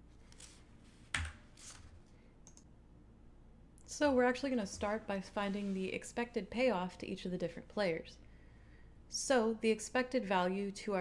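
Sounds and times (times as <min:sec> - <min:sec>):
soft rustle: 0:04.8 - 0:06.2.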